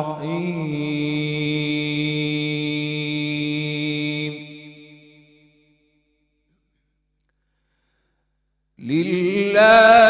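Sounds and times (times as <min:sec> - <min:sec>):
man reciting melodically: 0:00.0 - 0:04.8, 0:08.8 - 0:10.0.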